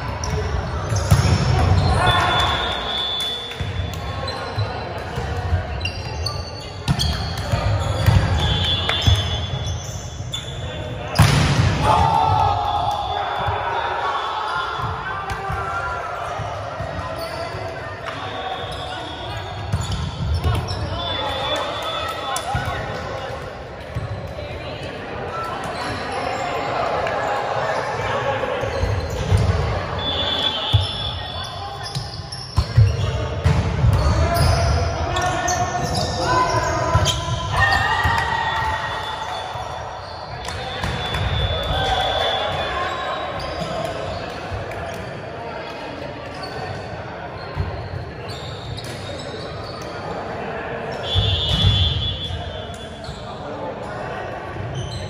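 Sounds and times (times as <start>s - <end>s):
players' voices echoing: 0.0s - 55.0s
sneakers squeaking on court: 0.2s - 11.4s, 16.2s - 23.0s, 27.6s - 38.3s, 39.0s - 42.1s, 46.3s - 50.0s, 50.9s - 53.5s
volleyball hitting floor: 11.2s - 12.0s.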